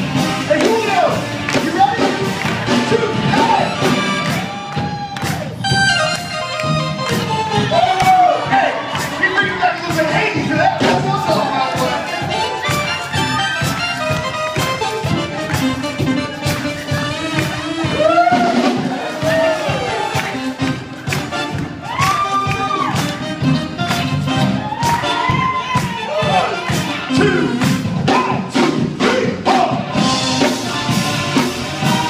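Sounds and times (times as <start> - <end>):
crowd cheering: 0.0 - 27.7
live rock band playing: 0.0 - 32.0.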